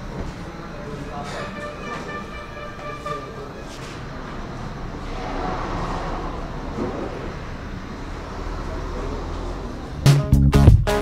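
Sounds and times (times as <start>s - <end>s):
road traffic rumble: 0.0s - 10.6s.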